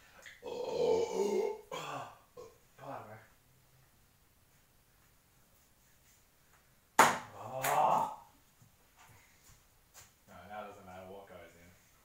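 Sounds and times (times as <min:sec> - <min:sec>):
sharp slap-like smack: 0:07.0 - 0:07.8.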